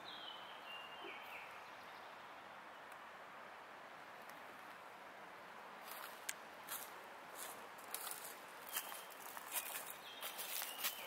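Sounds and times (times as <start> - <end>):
footsteps crunching dry leaves: 5.8 - 11.0.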